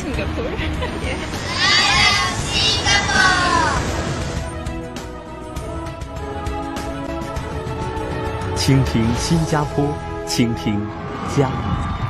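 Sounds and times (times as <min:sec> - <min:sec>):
background music: 0:00.0 - 0:12.0
children calling out together: 0:01.4 - 0:03.8.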